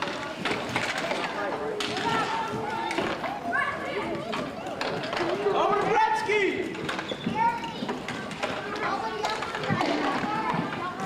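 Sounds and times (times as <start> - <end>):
hockey sticks clacking: 0.0 - 11.0.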